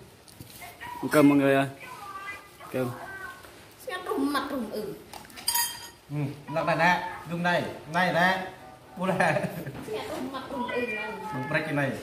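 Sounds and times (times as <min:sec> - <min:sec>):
metal spoon clinking pot: 0:05.4 - 0:06.0.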